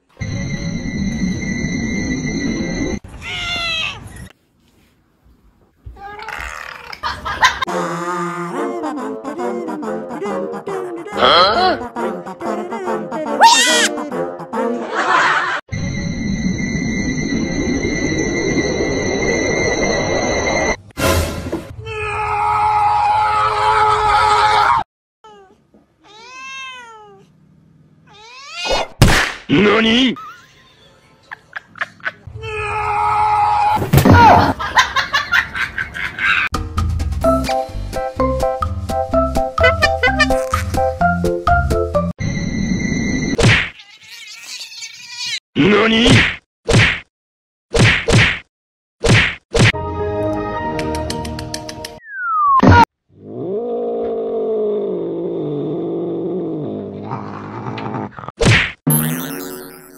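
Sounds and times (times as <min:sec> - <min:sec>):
cat meowing: 0:03.1 - 0:04.1, 0:25.2 - 0:27.3, 0:28.1 - 0:28.7, 0:43.8 - 0:45.4
cat yowling harshly: 0:03.2 - 0:04.0, 0:13.4 - 0:13.9, 0:21.8 - 0:27.2, 0:28.1 - 0:28.8, 0:32.4 - 0:34.4, 0:43.7 - 0:45.4
sharp whacks: 0:28.6 - 0:29.5, 0:43.4 - 0:43.7, 0:46.0 - 0:47.1, 0:47.7 - 0:49.8, 0:58.4 - 0:58.9
falling whistle: 0:52.0 - 0:52.8
cat growling yowl: 0:53.2 - 0:58.3.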